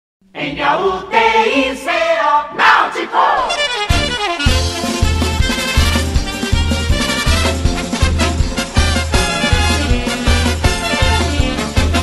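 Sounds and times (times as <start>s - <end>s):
voices shouting and singing: 0.4s - 3.7s
band music: 2.6s - 12.0s.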